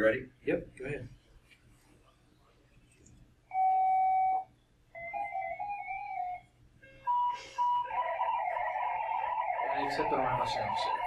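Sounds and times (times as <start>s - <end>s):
digital modem tones over radio: 9.6s - 11.0s.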